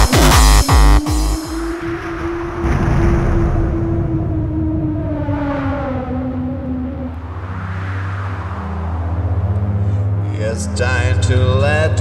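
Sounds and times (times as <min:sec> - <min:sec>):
dense low rumble: 0:00.0 - 0:12.0
held synth tone sinking in pitch: 0:01.6 - 0:11.7.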